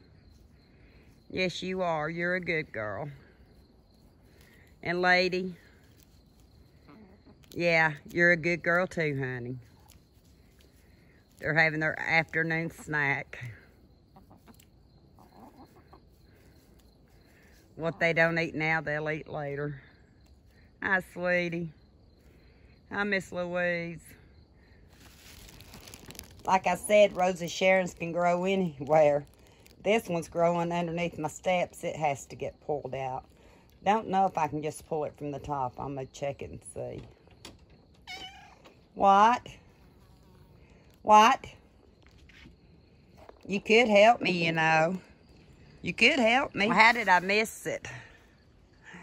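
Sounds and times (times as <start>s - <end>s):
hens clucking: 14.1s - 16.8s
cat meowing: 38.0s - 38.7s.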